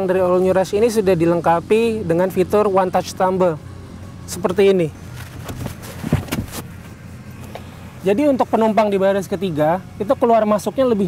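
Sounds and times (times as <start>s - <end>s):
car seat clicks and knocks: 5.2s - 6.7s.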